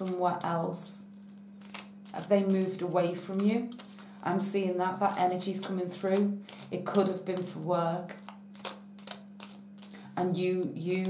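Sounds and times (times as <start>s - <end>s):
steady low hum: 0.0s - 11.0s
cards clicking and tapping: 1.6s - 4.2s, 5.0s - 10.2s.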